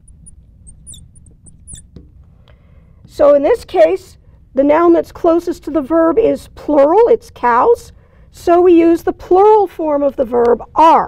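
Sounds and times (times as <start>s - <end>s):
marker squeaking on glass: 0.0s - 2.2s
marker tip tapping: 0.0s - 2.2s.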